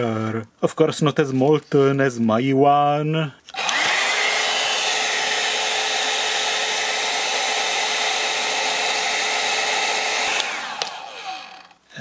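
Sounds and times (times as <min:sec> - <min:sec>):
hair dryer blowing: 0:03.6 - 0:11.8.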